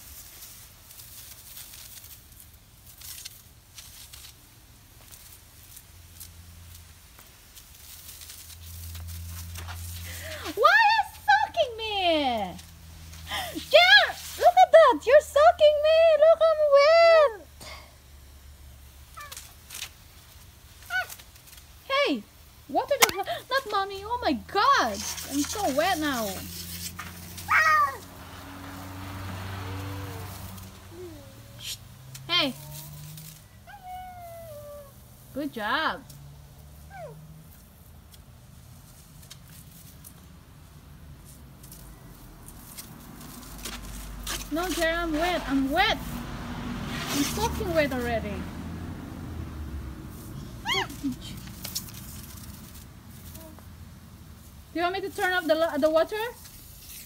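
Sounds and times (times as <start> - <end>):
faint steady hiss: 0.0 - 57.0
toddler crying out: 27.5 - 28.1, 30.0 - 31.6, 50.6 - 51.2.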